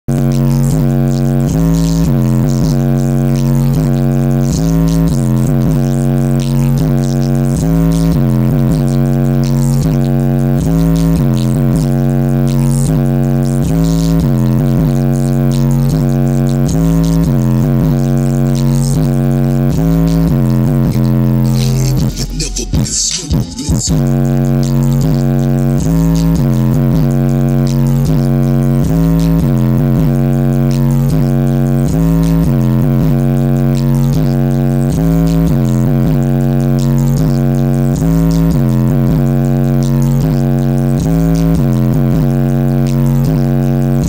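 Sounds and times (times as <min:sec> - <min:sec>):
droning bass through subwoofers: 0:00.0 - 0:44.0.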